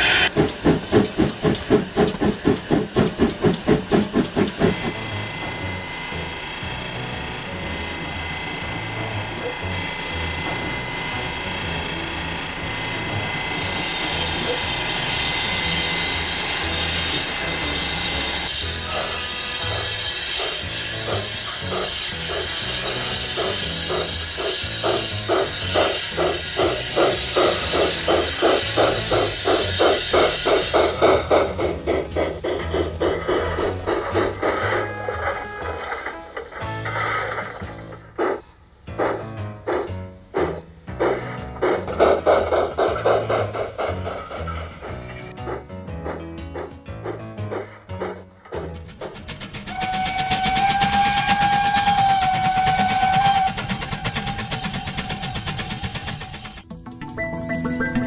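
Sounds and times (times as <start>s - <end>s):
model steam locomotive chuffing: 0.0s - 58.0s
background music: 4.1s - 52.6s, 56.6s - 58.0s.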